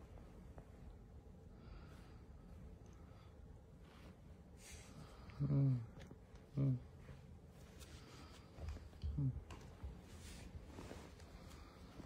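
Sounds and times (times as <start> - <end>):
person humming low: 5.3 - 7.0.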